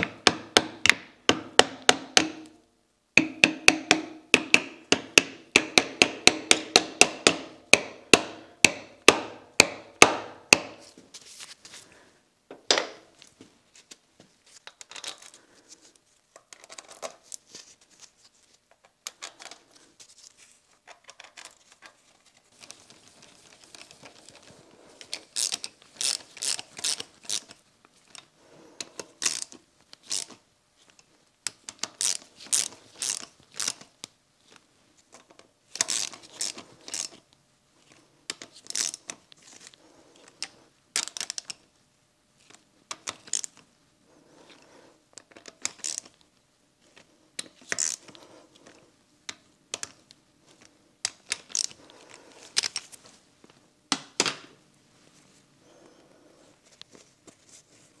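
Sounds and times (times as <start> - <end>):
metal parts clinking: 14.6 - 15.4, 16.4 - 17.5.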